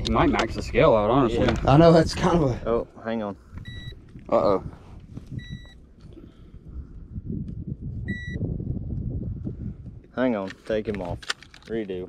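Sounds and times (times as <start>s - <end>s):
short high beep: 5.4s - 5.8s, 8.1s - 8.4s.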